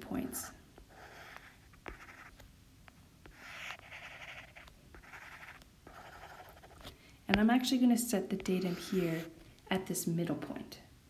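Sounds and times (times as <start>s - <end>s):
stylus scratching on tablet screen: 0.0s - 9.4s.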